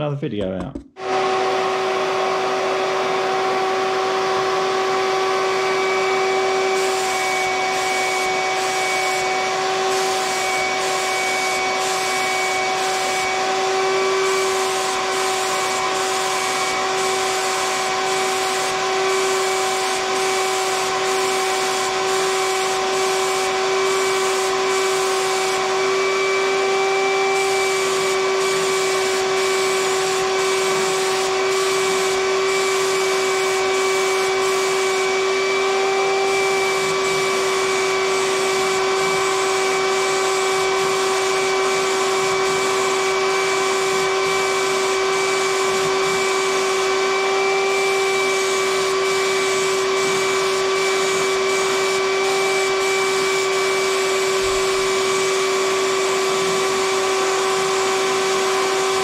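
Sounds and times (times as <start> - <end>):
air supply motor humming: 5.7 - 59.0
spray gun hissing: 6.7 - 59.0.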